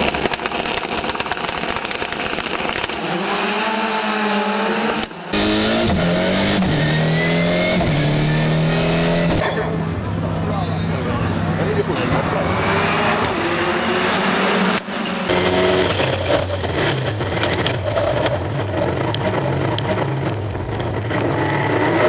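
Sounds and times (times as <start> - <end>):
racing car engines accelerating: 2.5 - 22.0.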